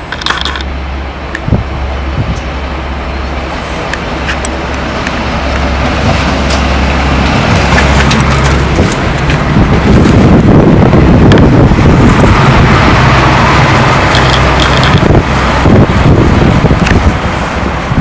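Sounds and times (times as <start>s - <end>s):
diesel locomotive engine drone: 0.0s - 18.0s.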